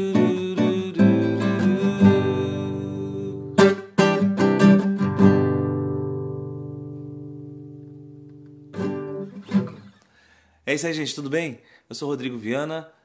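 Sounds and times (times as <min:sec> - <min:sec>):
classical guitar playing: 0:00.0 - 0:10.0.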